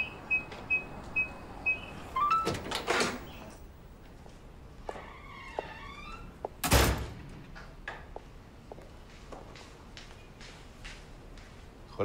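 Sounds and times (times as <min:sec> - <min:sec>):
keypad lock beeping: 0:00.0 - 0:02.6
door opening: 0:00.4 - 0:03.6, 0:04.9 - 0:08.0.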